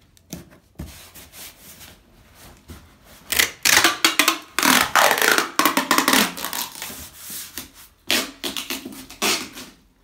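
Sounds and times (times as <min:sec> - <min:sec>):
packing tape screeching off roll: 0:08.1 - 0:09.8.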